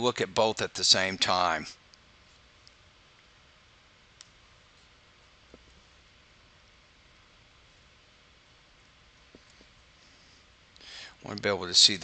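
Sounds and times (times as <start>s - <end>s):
faint click: 4.2s - 4.4s.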